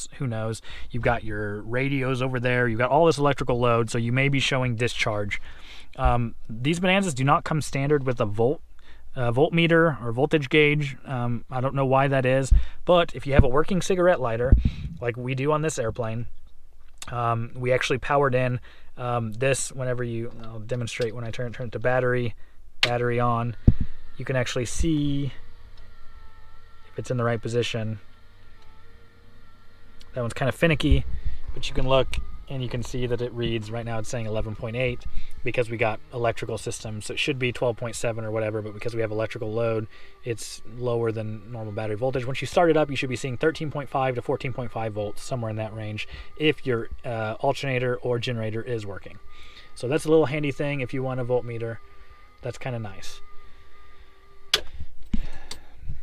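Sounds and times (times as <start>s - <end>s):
faint low hum: 0.0s - 56.0s
high whine tones: 0.0s - 56.0s.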